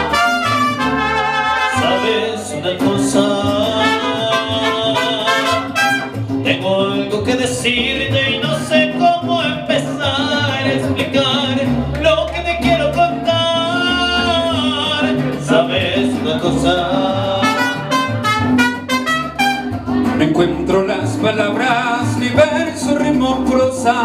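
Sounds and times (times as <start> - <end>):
trumpets playing: 0.0 - 2.5, 3.7 - 6.3, 17.3 - 19.8
man singing into a microphone: 0.0 - 19.3, 20.0 - 24.0
strummed guitars: 0.0 - 24.0.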